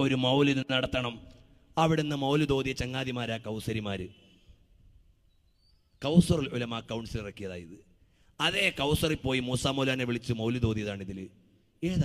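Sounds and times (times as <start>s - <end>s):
man's amplified speech: 0.0s - 4.2s, 6.0s - 12.0s.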